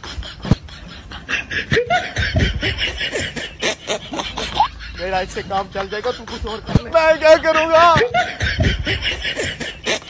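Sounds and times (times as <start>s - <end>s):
people laughing: 0.0s - 10.0s.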